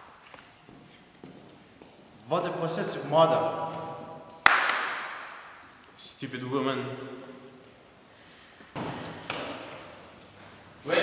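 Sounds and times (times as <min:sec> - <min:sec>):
sharp crack: 0:04.4 - 0:05.6.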